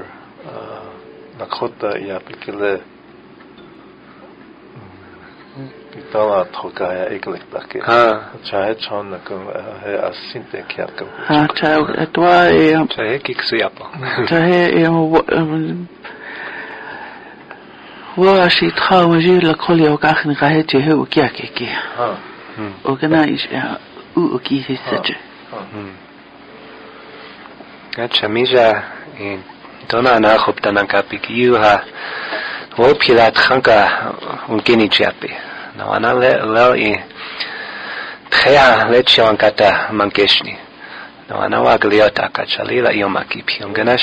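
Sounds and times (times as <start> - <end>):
faint low murmur: 0.0 - 14.7
low hum: 2.8 - 7.2.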